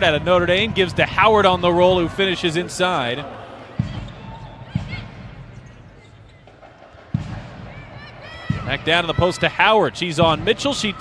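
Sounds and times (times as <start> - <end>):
arena background noise: 0.0 - 11.0.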